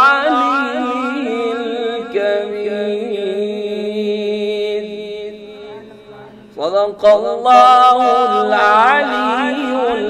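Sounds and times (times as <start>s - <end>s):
man reciting in melodic chant: 0.0s - 10.0s.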